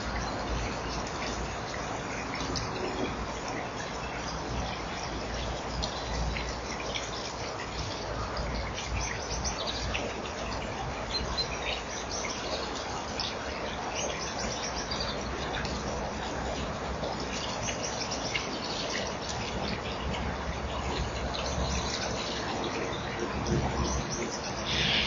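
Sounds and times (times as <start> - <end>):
small birds chirping: 23.6 - 25.0
steady hiss: 24.4 - 25.0.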